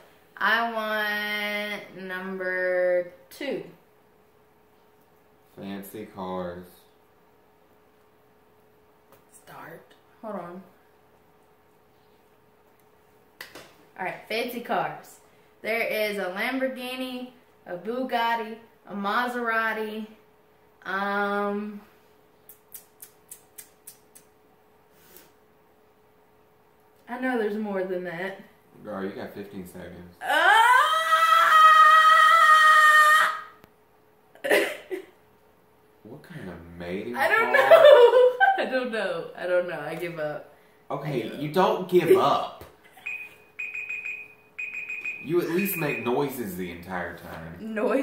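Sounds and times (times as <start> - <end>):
faint steady hum: 0.0 - 48.0
timer alarm beeping: 43.0 - 46.4.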